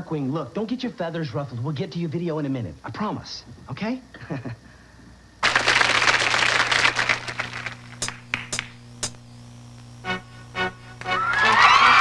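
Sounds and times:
audience applauding: 5.4s - 8.6s, 11.0s - 12.0s
sharp taps: 8.0s - 9.2s.

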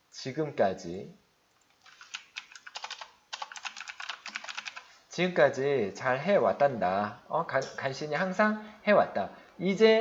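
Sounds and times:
typing on a computer keyboard: 1.6s - 4.9s.

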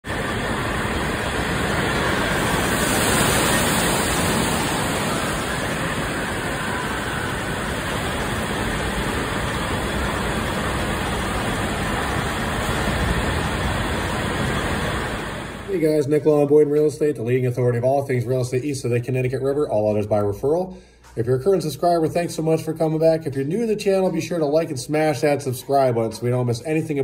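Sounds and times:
water pouring and splashing: 0.0s - 15.7s.

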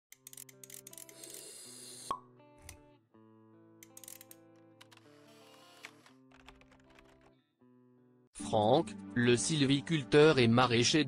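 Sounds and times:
background music of held notes: 2.2s - 11.0s.

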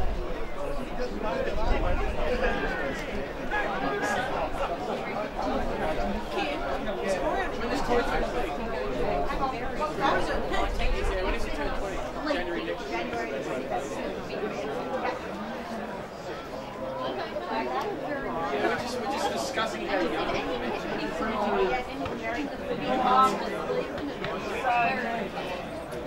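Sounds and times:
overlapping chatter of spectators: 0.0s - 26.0s.

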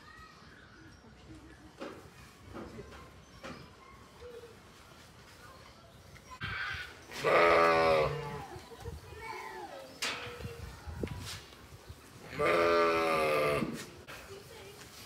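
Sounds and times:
sheep bleating: 7.2s - 8.4s, 12.3s - 13.8s.

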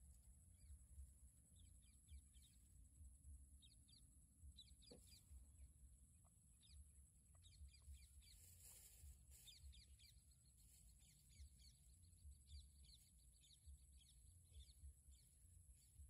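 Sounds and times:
small bird chirps: 0.0s - 16.0s.

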